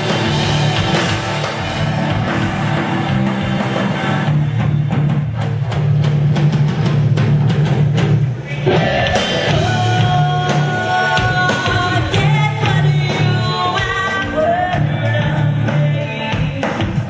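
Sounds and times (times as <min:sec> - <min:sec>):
rock band playing live: 0:00.0 - 0:17.0.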